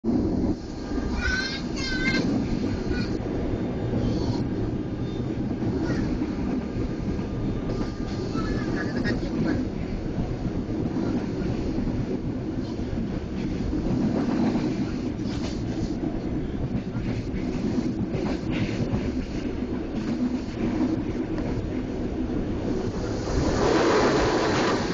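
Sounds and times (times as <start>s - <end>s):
train rumbling from inside carriage: 0.0s - 24.9s
air rushing past: 22.6s - 24.9s.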